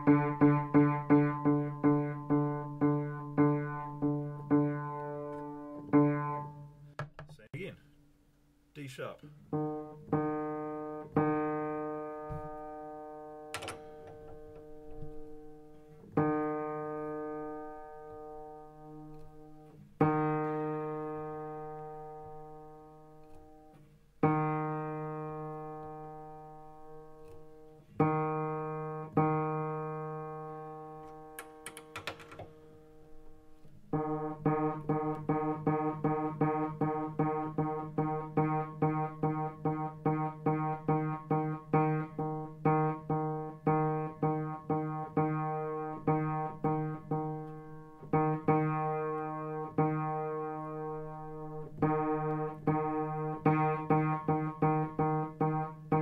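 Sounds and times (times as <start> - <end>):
piano note being tuned: 0.0 - 7.0, 9.4 - 56.0.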